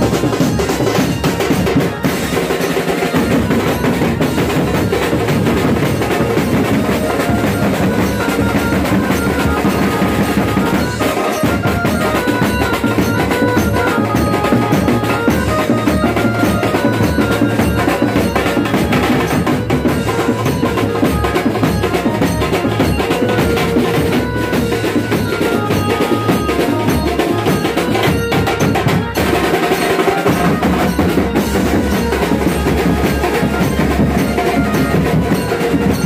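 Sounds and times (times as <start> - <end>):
fast loud drumming: 0.0 - 36.0.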